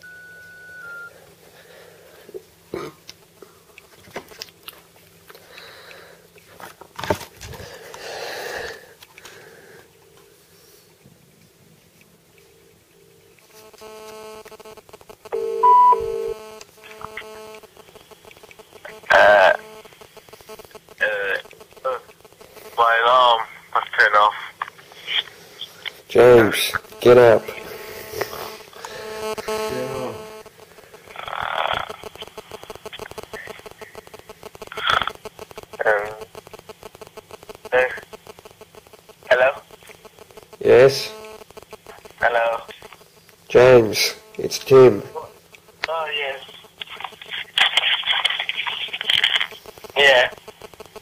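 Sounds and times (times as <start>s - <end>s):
tinny voice from phone speaker: 18.8s - 19.7s, 21.0s - 22.1s, 22.8s - 25.3s, 26.1s - 27.8s, 29.4s - 30.4s, 31.1s - 34.1s, 34.7s - 36.3s, 37.7s - 38.1s, 39.2s - 39.8s, 40.6s - 41.2s, 41.9s - 43.0s, 45.9s - 50.5s.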